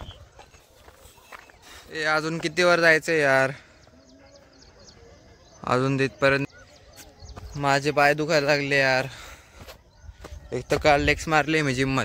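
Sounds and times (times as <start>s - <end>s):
footsteps on dirt trail: 0.0s - 4.9s, 6.6s - 12.0s.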